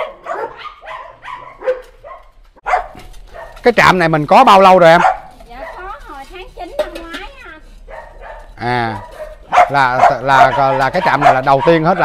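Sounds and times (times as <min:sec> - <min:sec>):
dogs barking: 0:00.0 - 0:03.7, 0:04.8 - 0:06.0, 0:07.8 - 0:12.0.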